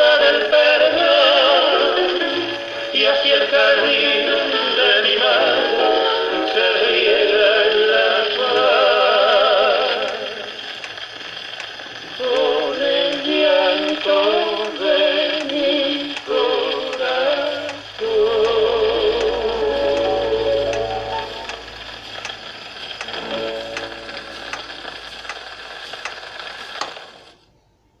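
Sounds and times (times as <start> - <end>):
band music on gramophone record: 0.0 - 27.3
record surface hiss: 0.0 - 28.0.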